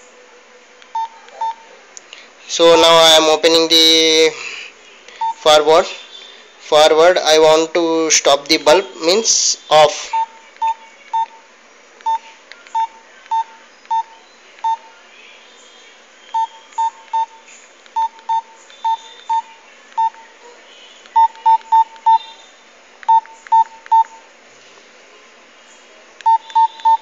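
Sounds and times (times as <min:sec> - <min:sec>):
phone keypad beeps: 0:01.0 - 0:01.6, 0:05.2 - 0:05.4, 0:10.2 - 0:11.4, 0:12.0 - 0:14.8, 0:16.3 - 0:17.4, 0:18.0 - 0:20.2, 0:21.2 - 0:22.4, 0:23.1 - 0:24.2, 0:26.2 - 0:27.0.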